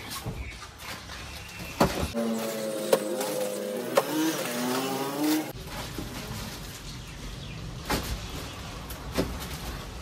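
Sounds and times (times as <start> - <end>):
vehicle engine revving: 2.2 - 5.5.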